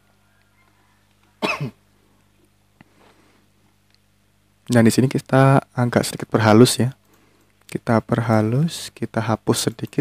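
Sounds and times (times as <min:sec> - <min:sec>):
short cough: 0:01.4 - 0:01.8.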